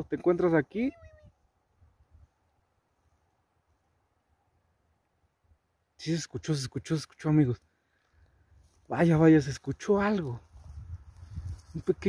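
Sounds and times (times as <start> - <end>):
man calling: 0.0 - 1.3.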